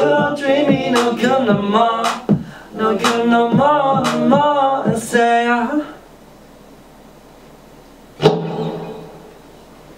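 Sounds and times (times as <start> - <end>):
faint amplifier hiss: 0.0 - 9.9.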